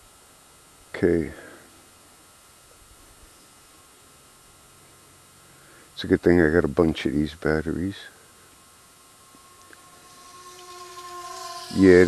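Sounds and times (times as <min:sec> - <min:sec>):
background hiss: 0:00.0 - 0:12.0
rc plane motor whine: 0:08.1 - 0:12.0.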